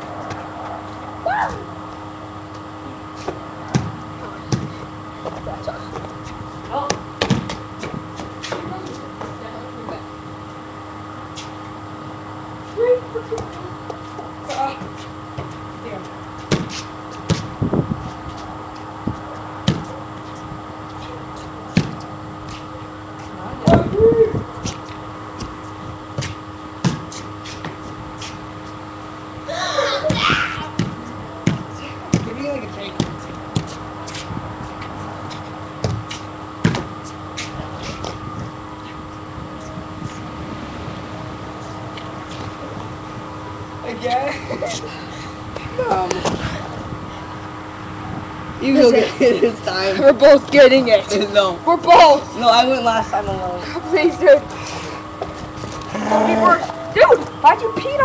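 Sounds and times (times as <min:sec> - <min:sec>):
steady hum: 0:00.0 - 0:58.0
knocks and thuds: 0:06.9 - 0:08.0, 0:36.6 - 0:36.9.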